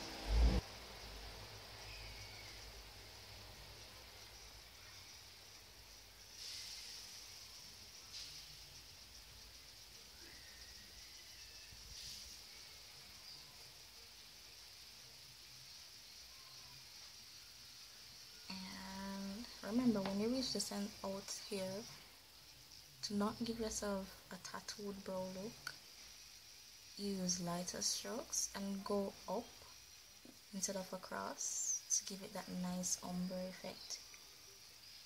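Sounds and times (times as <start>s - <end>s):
faint high hiss: 0.0s - 35.0s
soft swells of noise: 0.0s - 35.0s.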